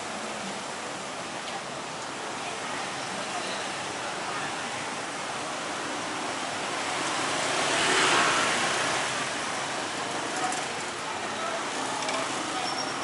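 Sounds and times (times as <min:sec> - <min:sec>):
street traffic noise: 0:00.0 - 0:13.0
vehicle passing close by: 0:06.8 - 0:09.5.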